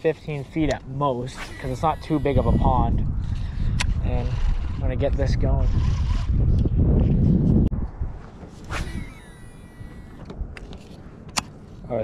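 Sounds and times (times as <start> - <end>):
fishing rod swish: 1.3 - 1.9, 8.6 - 9.5
reel spool whirring: 1.4 - 4.8, 5.7 - 6.3, 8.8 - 10.2.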